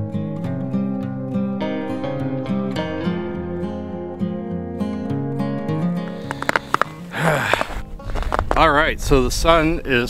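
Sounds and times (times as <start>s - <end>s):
acoustic guitar music: 0.0s - 8.8s
breathy rush: 5.9s - 8.4s
microphone handling clicks: 6.2s - 8.6s
wind rumble on microphone: 7.8s - 10.0s.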